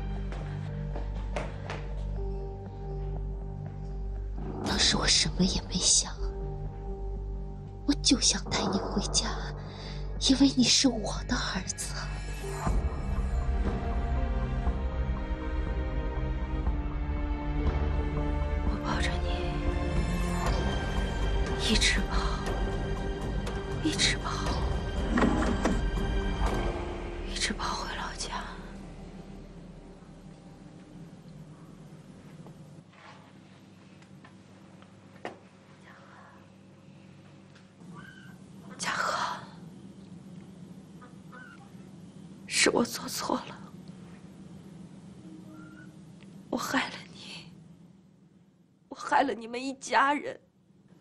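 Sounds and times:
soft background music: 0.0 - 51.0.

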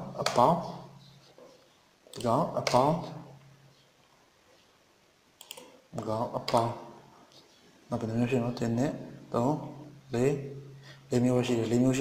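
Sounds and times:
computer mouse clicks: 5.4 - 5.8.

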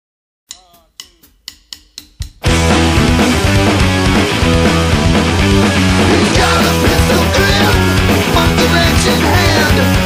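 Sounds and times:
drumsticks clicking: 0.5 - 2.4.

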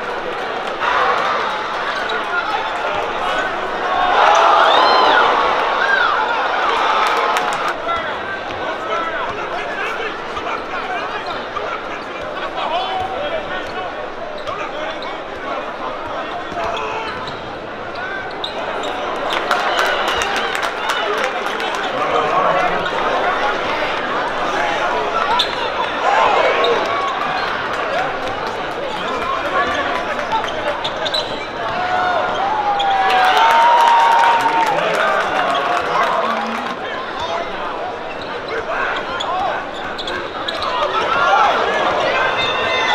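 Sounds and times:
chatter of many voices: 0.0 - 42.9.

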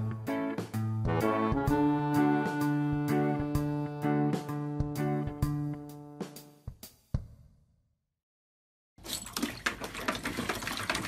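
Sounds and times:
puppy splashing in water: 9.0 - 11.0.

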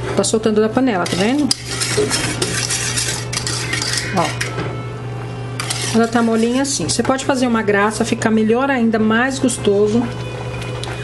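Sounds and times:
whisk scraping metal saucepan: 1.0 - 4.6, 5.6 - 7.0.

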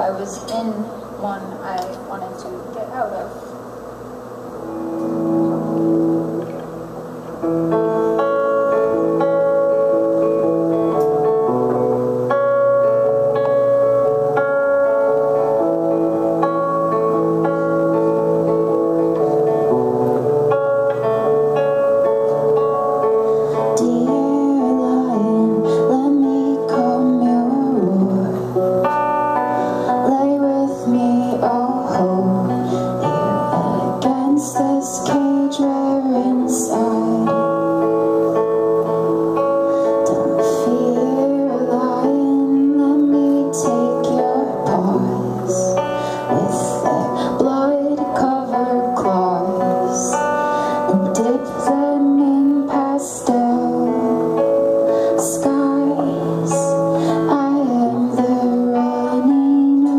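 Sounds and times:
electric guitar chords: 0.0 - 59.9
woman singing: 23.5 - 38.3, 40.0 - 59.9.

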